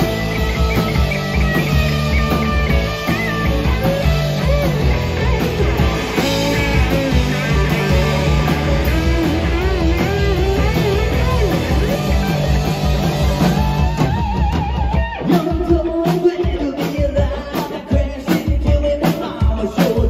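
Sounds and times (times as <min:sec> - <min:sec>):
electric guitar lead: 0:00.0 - 0:16.8
bass and drums: 0:00.0 - 0:20.0.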